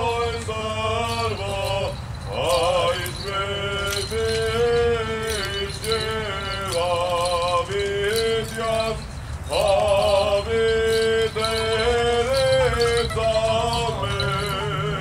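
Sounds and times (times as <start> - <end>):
man chanting a hymn: 0.0 - 15.0.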